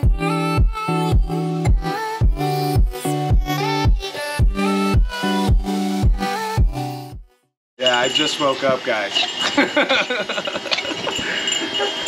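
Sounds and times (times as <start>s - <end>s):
light metallic jingling: 7.8s - 12.0s.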